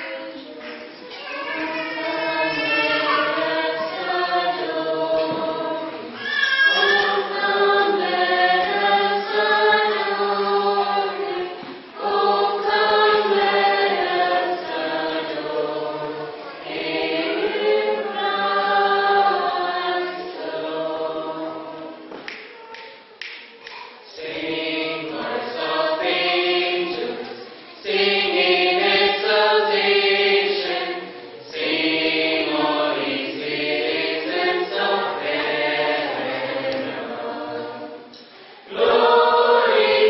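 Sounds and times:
mixed choir singing a hymn: 0.0 - 22.4, 23.9 - 40.0.

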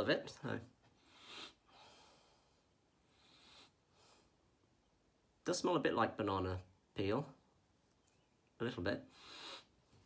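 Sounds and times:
person sniffing: 1.0 - 2.4, 3.1 - 4.3, 9.1 - 9.8.

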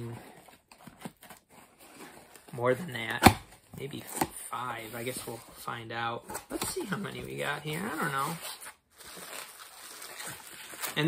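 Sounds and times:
package rustling: 8.9 - 11.0.

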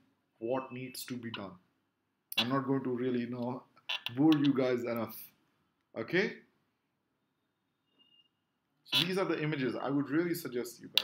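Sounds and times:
man speaking: 0.4 - 1.6, 2.4 - 6.5, 8.9 - 11.0.

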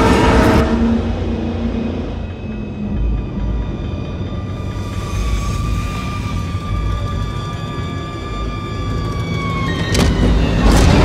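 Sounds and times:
held music tones sliding down: 1.2 - 10.6.

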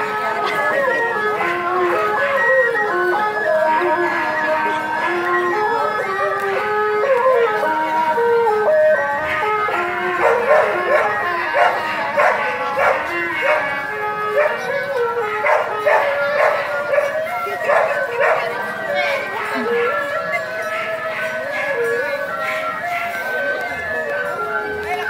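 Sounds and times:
wind instrument melody: 0.0 - 25.0
dog barking: 10.2 - 13.7, 14.4 - 14.6, 15.4 - 18.5.

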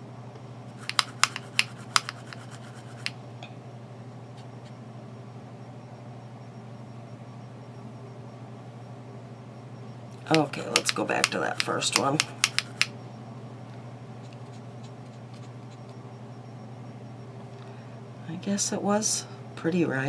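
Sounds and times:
steady low hum: 0.0 - 20.0
brush tapping plastic palette: 0.8 - 3.2, 10.3 - 12.9.

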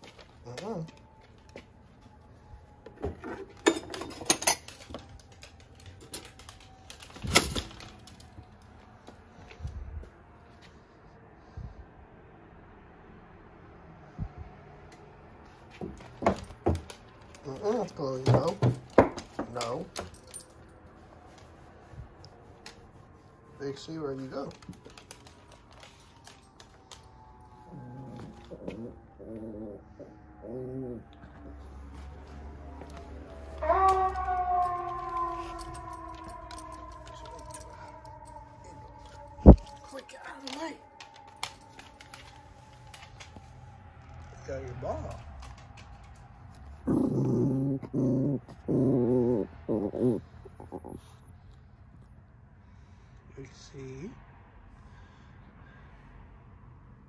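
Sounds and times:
dogs moving on hardwood floor: 0.0 - 10.1, 15.5 - 29.2, 31.2 - 47.1
small dog growling: 27.7 - 31.3, 46.8 - 51.2.

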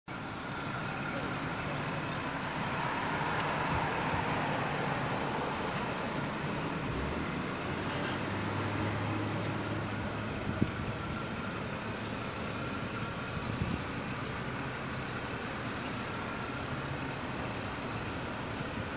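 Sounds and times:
road traffic noise: 0.0 - 18.9
low engine hum: 0.1 - 18.9
vehicle passing: 0.9 - 11.2.

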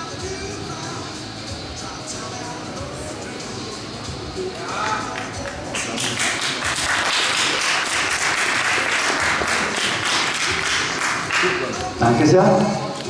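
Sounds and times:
audience clapping: 4.5 - 13.0.

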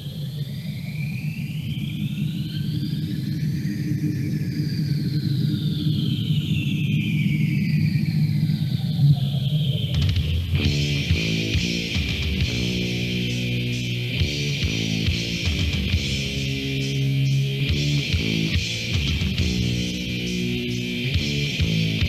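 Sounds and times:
high gliding whining tones: 0.0 - 22.0
low rumbling drone: 0.1 - 22.0
metal guitars: 9.9 - 22.0.

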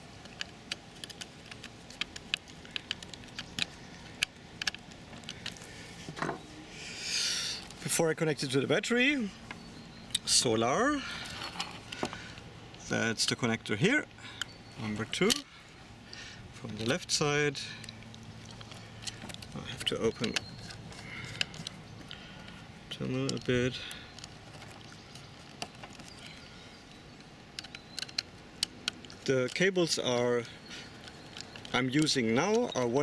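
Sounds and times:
wires being handled: 0.0 - 6.6, 10.2 - 33.0.

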